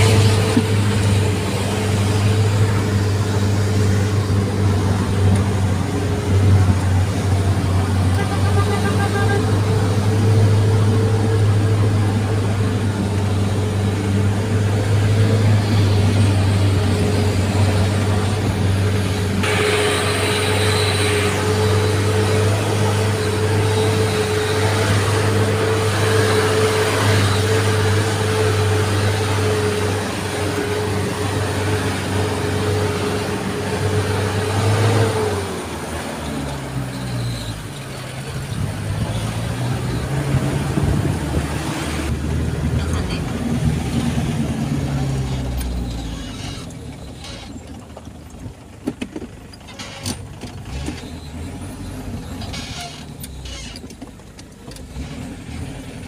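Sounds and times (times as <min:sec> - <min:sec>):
vehicle engine humming: 0:00.0 - 0:56.0.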